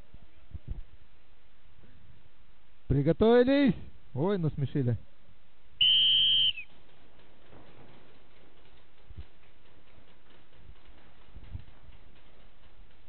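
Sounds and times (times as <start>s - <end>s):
high-pitched whistle blast: 5.8s - 6.7s.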